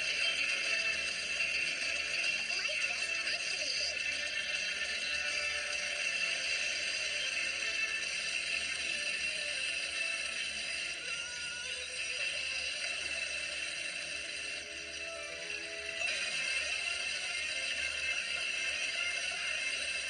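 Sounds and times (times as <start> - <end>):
cartoon background music: 0.0 - 20.0.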